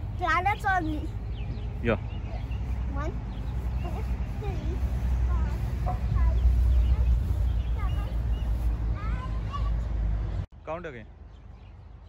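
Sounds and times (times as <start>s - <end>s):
steady low rumble: 0.0s - 10.2s
birds chirping: 0.0s - 12.0s.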